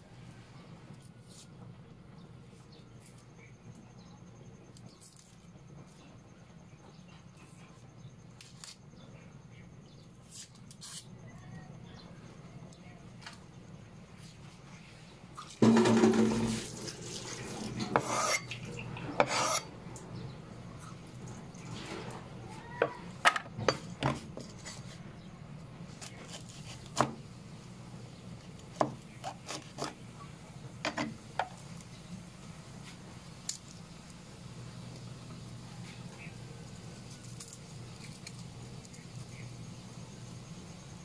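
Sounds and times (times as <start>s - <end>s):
blade scraping cutting board: 15.6s - 19.7s.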